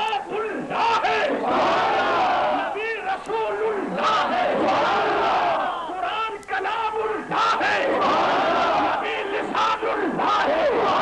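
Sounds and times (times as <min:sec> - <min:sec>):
crowd of men chanting: 0:00.2 - 0:06.0, 0:06.9 - 0:11.0.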